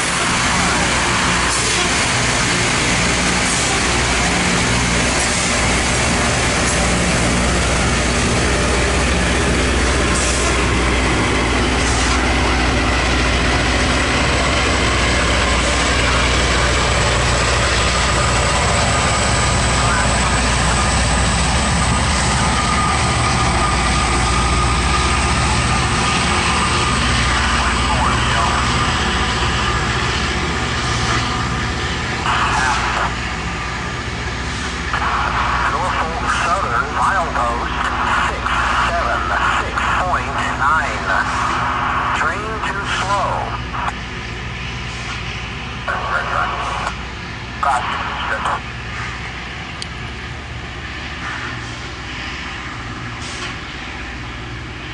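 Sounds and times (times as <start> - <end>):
rail grinder grinding: 0.0 - 54.9.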